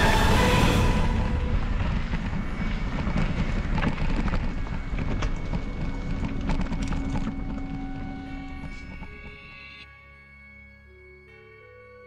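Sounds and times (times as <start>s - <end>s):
wind rumbling on microphone: 0.0s - 9.4s
faint steady tones: 0.0s - 12.0s
mountain bike rattling on dirt: 1.8s - 9.2s.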